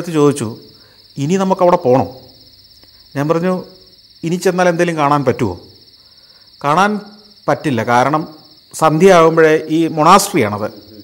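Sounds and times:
crickets chirring: 0.0 - 11.0
man speaking: 6.6 - 11.0.

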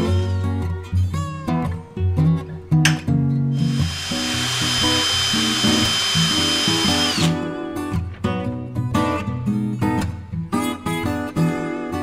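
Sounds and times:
acoustic guitar music: 0.0 - 12.0
metal lathe whining: 3.6 - 7.4.

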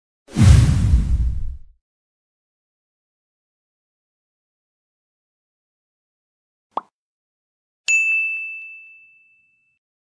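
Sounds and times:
whoosh: 0.3 - 1.7
deep boom: 0.3 - 1.8.

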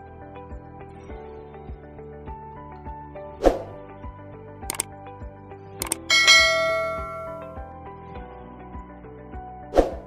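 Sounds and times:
background music: 0.0 - 10.0
notification bell ding: 5.9 - 7.6.

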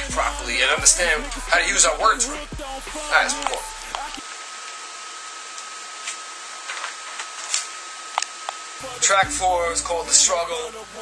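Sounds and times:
thin high tone: 0.0 - 4.2, 8.8 - 11.0
steady hiss: 0.0 - 11.0.

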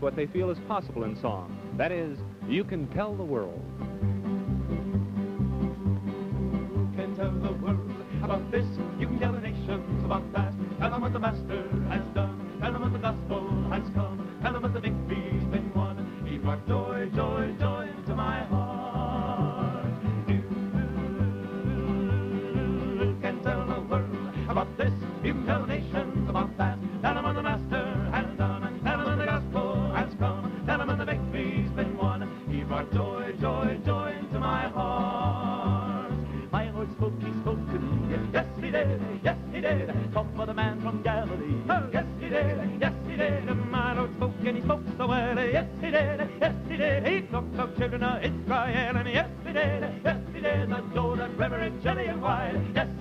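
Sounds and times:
bass notes: 0.0 - 53.0
male vocal trio singing in harmony: 6.6 - 53.0.

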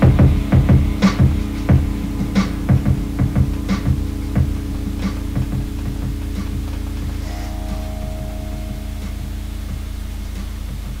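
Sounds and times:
sustained low chord: 0.0 - 11.0
soft regular pulse: 1.8 - 11.0
higher held note: 4.1 - 11.0.

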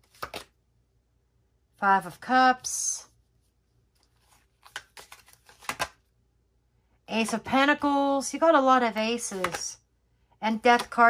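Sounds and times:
cards flicking and rustling: 0.0 - 0.6, 4.0 - 6.1, 9.0 - 9.8.

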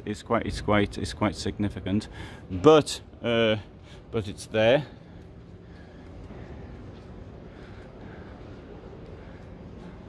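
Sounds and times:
distant voices: 3.3 - 10.0.

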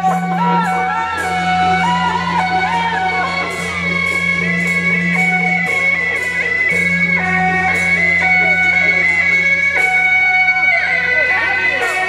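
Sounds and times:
percussion crash: 0.0 - 10.7
shrill reed horns melody: 0.0 - 12.0.

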